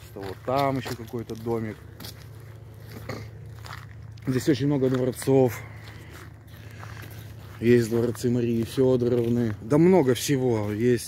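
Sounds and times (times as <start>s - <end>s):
footsteps crunching on gravel and leaves: 0.0s - 11.0s
low steady hum: 0.0s - 11.0s.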